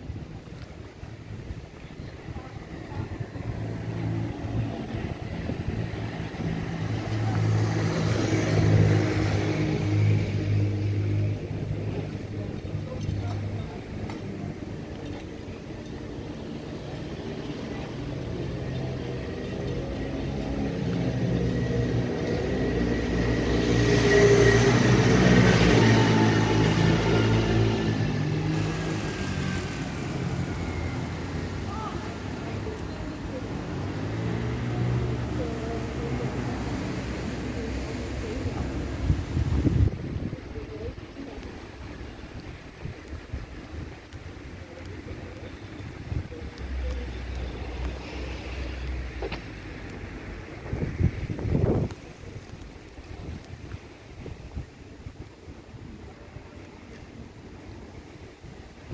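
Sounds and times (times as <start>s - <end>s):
vehicles passing by: 0.0s - 58.9s.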